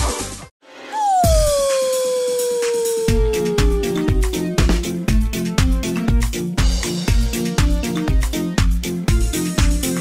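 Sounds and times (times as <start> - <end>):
dog howling: 1.0 - 5.4
dance music beat: 1.1 - 5.6.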